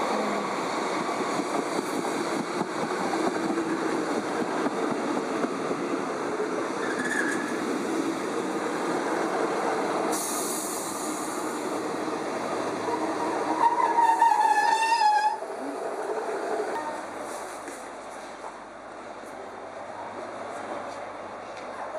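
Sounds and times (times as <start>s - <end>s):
train wheels rumbling on rails: 0.0s - 21.9s
short burst of hiss: 10.1s - 11.5s.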